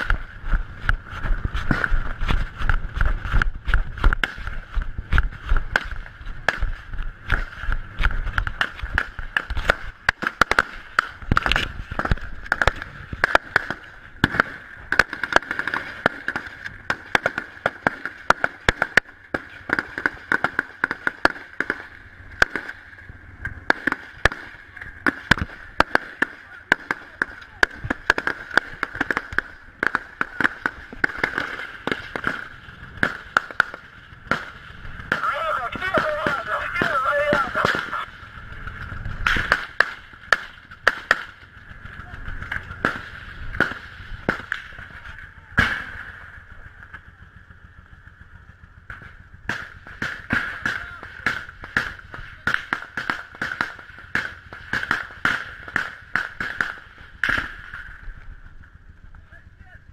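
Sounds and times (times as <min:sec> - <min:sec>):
small-arms gunfire: 0:01.7 - 0:41.4, 0:42.2 - 0:46.2, 0:48.9 - 0:58.0
people shouting: 0:35.1 - 0:38.1.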